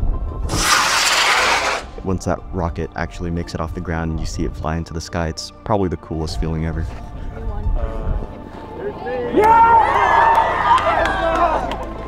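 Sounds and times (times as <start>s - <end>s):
rocket motor hissing: 0.5s - 2.0s.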